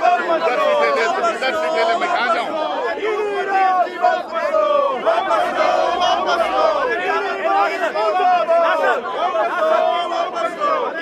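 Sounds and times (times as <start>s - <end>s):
crowd shouting and talking: 0.0s - 11.0s.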